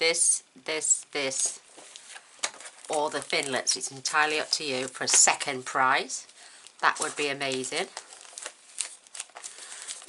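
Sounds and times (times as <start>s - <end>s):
plastic packaging crinkling: 1.7s - 5.5s, 6.2s - 10.0s.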